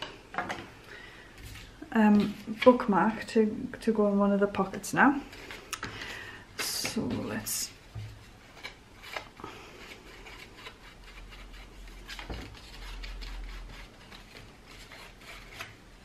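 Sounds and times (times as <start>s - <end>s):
brush scrubbing on card: 9.6s - 15.5s.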